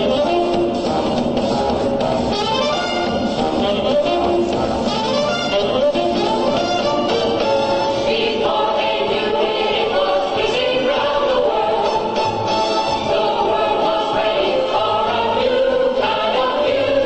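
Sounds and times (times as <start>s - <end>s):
musical accompaniment: 0.0s - 17.0s
choir singing: 7.1s - 17.0s.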